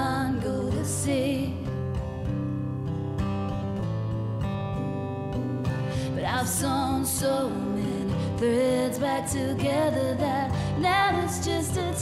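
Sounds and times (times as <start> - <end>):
acoustic guitar strumming: 0.0 - 12.0.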